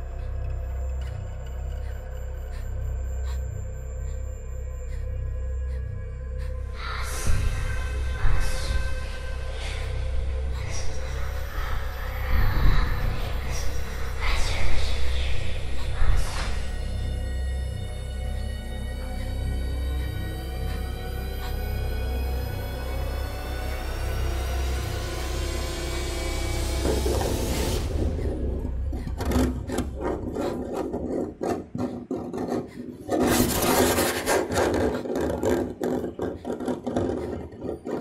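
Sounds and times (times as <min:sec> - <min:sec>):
gliding horror soundtrack tones: 0:00.0 - 0:38.0
rough rasping strokes: 0:26.7 - 0:38.0.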